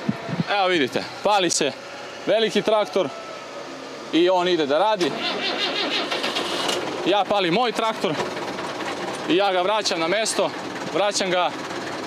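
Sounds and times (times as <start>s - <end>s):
tractor diesel engine starting: 4.9s - 12.0s.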